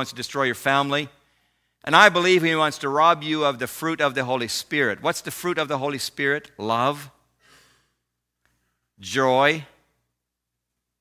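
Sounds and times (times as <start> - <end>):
man speaking: 0.0 - 1.2, 1.8 - 7.2, 9.0 - 9.8
faint breath: 1.2 - 1.8, 7.4 - 9.0.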